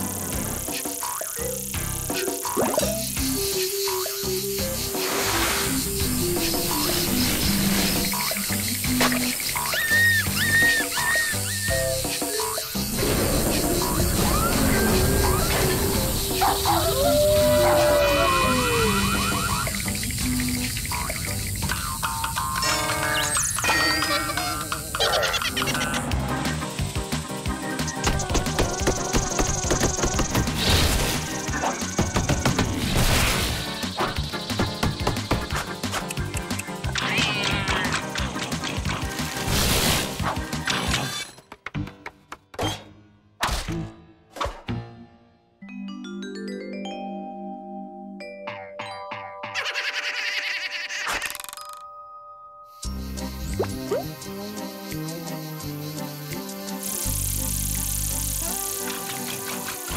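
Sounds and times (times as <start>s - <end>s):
cartoon background music: 0.0s - 51.8s, 52.6s - 59.9s.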